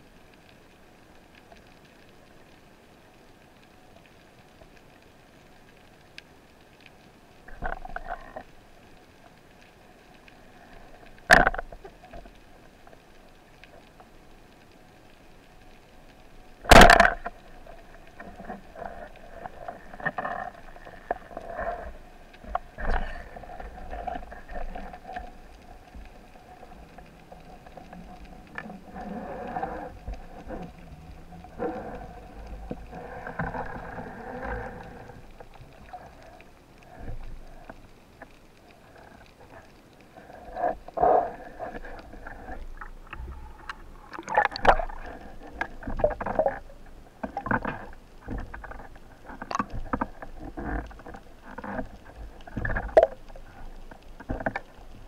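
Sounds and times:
water noise: 0.0 - 55.0.

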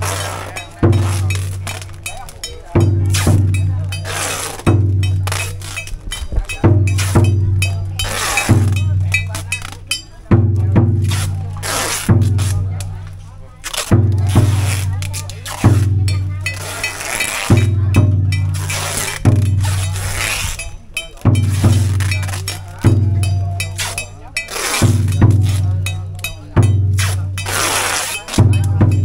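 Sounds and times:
cymbals clashing: 0.0 - 29.0
deep drum beats: 0.0 - 29.0.

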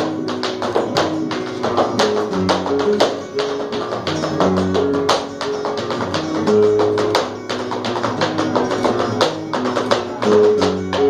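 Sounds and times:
dancer's shoe taps: 0.0 - 11.0
flamenco guitar playing: 0.0 - 11.0.

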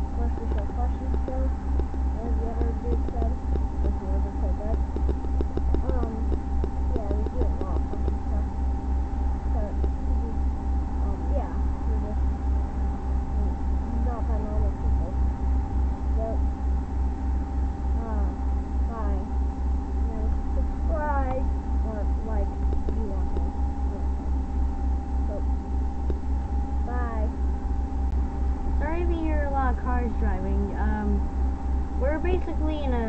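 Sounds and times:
high-pitched voice: 0.0 - 1.5, 2.2 - 4.8, 5.8 - 6.3, 7.0 - 8.5, 9.6 - 10.4, 13.4 - 15.2, 16.2 - 16.4, 26.9 - 27.4
low throbbing machine hum: 0.0 - 33.0
steady low rumble: 0.0 - 33.0.

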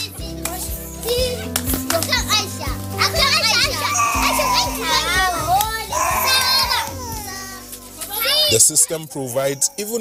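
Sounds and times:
background music with low notes: 0.0 - 10.0
children chattering and calling out: 0.0 - 10.0.

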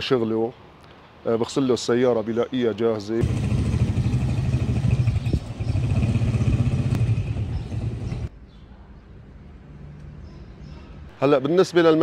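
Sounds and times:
motor tricycle engine rumble: 3.2 - 8.3.

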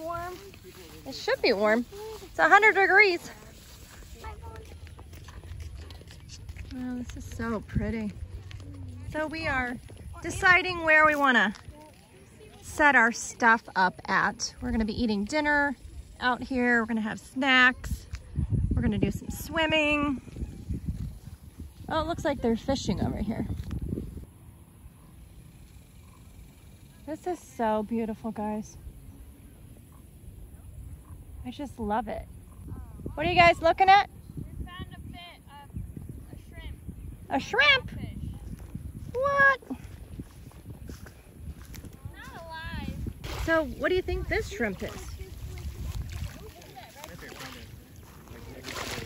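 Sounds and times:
wind rumble on microphone: 0.0 - 12.7, 17.7 - 25.1, 28.0 - 49.0
faint voices talking: 32.1 - 49.0.

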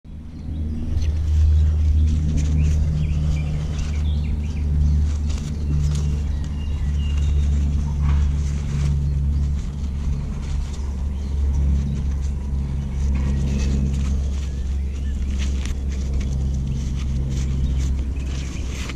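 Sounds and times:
steady low rumble: 0.0 - 18.9
fabric rustling: 1.1 - 18.9.

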